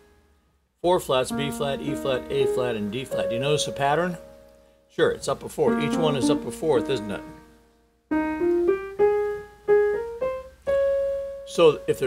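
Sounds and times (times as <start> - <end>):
grand piano single notes: 1.3 - 12.0.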